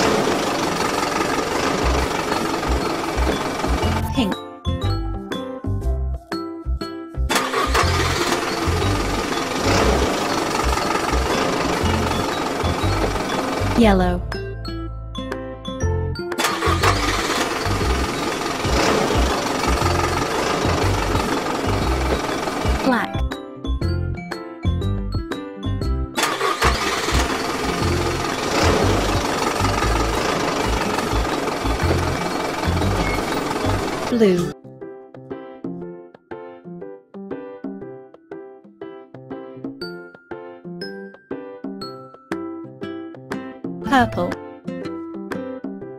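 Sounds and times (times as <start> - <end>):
car engine starting and rumbling: 0.0 - 4.3, 7.3 - 14.1, 16.4 - 23.1, 26.2 - 34.5
children's background music: 1.4 - 45.9
children's music with bass beat: 2.7 - 7.3, 11.9 - 16.3, 19.7 - 26.2, 43.8 - 45.6.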